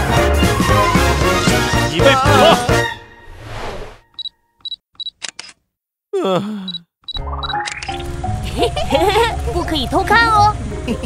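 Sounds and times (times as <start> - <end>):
quick clicks: 4.2 - 5.6, 7.1 - 8.0.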